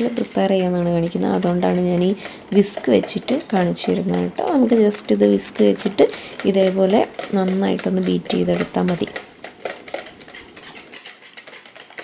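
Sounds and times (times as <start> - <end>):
whisk beating eggs in plastic bowl: 0.0 - 12.0.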